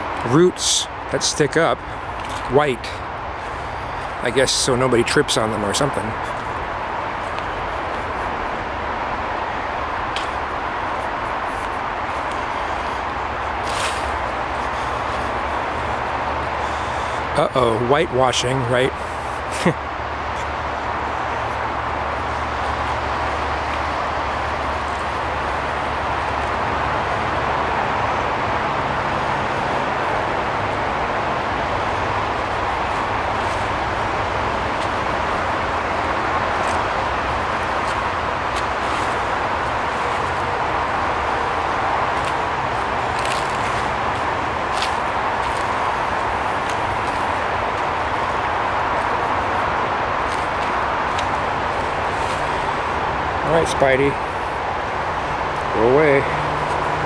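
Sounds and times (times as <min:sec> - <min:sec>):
distant road traffic: 0:00.0 - 0:57.0.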